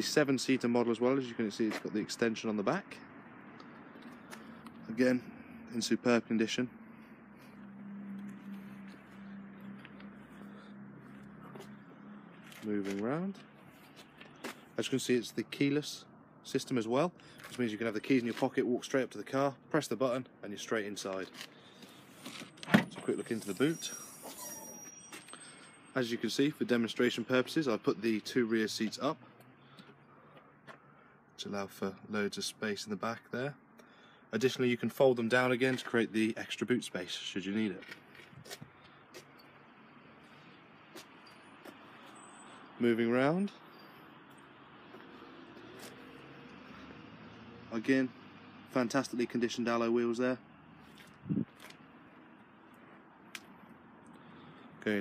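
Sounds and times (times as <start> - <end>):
car tailgate swinging open: 22.6 - 23.1.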